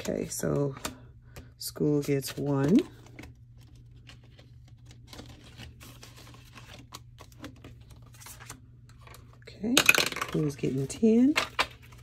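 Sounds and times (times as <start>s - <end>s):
paper rustling and plastic crinkling: 0.0s - 9.4s, 10.4s - 12.0s.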